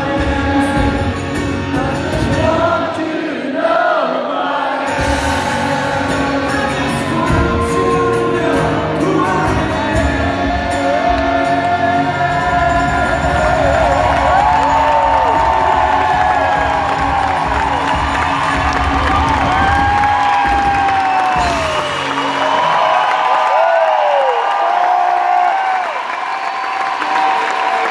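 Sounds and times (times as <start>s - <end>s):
live acoustic rock band: 0.0s - 3.0s, 4.8s - 23.4s
crowd cheering and whooping: 10.7s - 27.9s.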